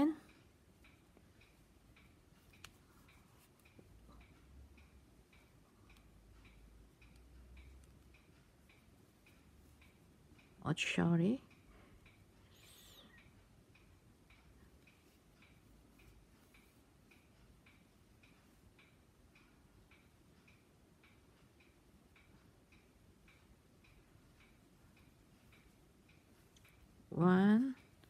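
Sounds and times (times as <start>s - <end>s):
faint even ticking: 0.0s - 28.0s.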